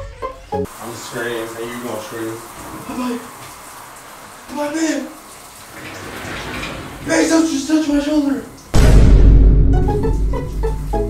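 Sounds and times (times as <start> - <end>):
shower water spraying: 0.7 - 8.9.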